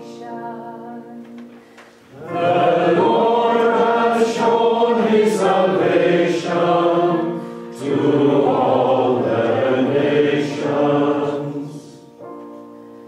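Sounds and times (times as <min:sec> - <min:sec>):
congregation singing: 0:00.0 - 0:12.7.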